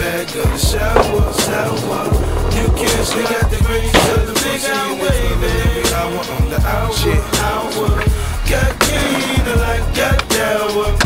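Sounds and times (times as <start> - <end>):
skateboard clacks: 0.0 - 6.5, 7.1 - 11.0
hip-hop beat: 0.0 - 11.0
skateboard wheels rolling on pavement: 0.0 - 11.0.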